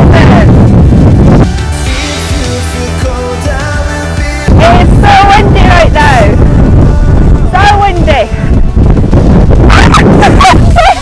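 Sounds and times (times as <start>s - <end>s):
wind buffeting microphone: 0.0s - 1.8s, 4.5s - 11.0s
woman yelping: 9.7s - 11.0s.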